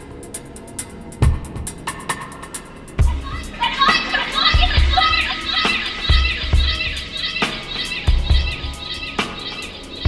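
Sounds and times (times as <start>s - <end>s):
ticking hi-hats: 0.0s - 10.0s
electronic downtempo track: 0.1s - 10.0s
sampled chattering voices: 3.0s - 10.0s
drum machine kick: 6.1s - 7.1s.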